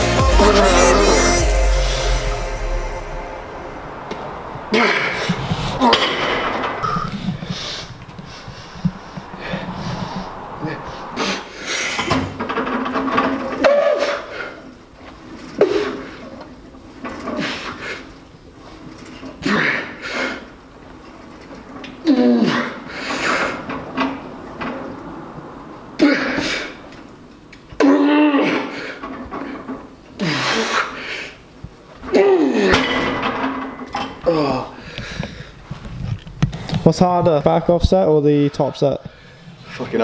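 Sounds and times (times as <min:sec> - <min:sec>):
electronic music: 0:00.0 - 0:05.1
man grunting and gasping: 0:34.2 - 0:35.3.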